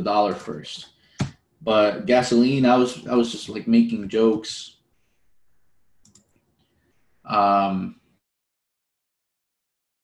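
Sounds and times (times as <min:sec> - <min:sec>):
faint computer clicks: 0:05.4 - 0:06.4.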